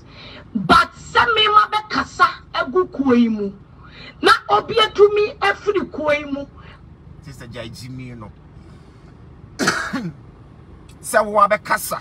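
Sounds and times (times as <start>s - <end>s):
car cabin noise: 4.2s - 12.0s.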